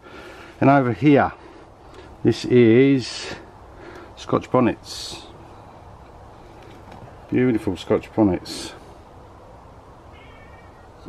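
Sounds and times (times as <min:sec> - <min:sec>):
low steady background noise: 0:00.0 - 0:11.0
cat meowing faintly: 0:10.1 - 0:11.0.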